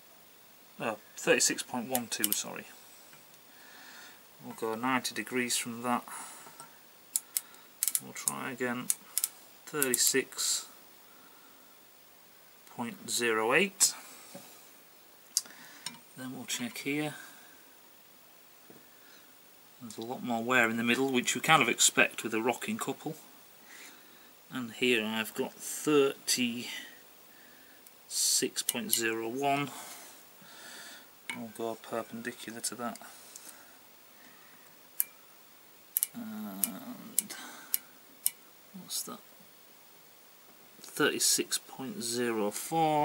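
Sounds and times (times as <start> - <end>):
sharp micrometer clicks: 1.9 - 2.4, 7.2 - 10.1
micrometer ratchet clicks: 7.2 - 8.0.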